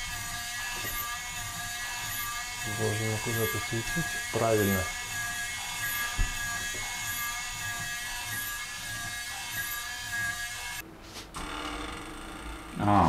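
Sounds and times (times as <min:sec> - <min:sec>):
small electric motor whining: 0:00.0 - 0:10.8.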